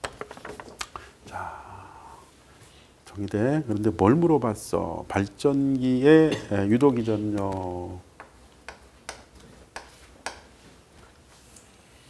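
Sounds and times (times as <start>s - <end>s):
chalk tapping on chalkboard: 8.2s - 10.6s.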